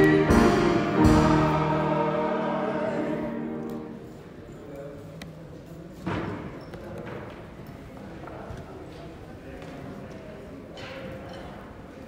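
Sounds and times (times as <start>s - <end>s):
murmur of people talking: 0.0s - 12.0s.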